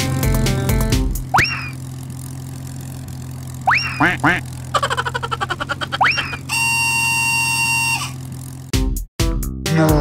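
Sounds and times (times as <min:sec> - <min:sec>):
steady buzzing tone: 0:06.0 - 0:08.3.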